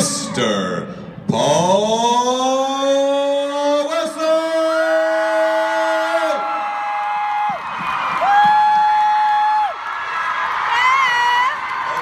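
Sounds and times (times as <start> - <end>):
man announcing through a pa: 0.0 - 6.4
crowd cheering and whooping: 5.6 - 12.0.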